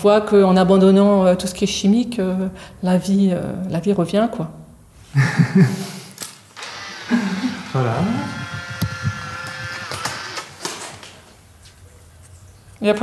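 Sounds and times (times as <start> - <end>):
woman speaking: 0.0 - 4.6, 12.8 - 13.0.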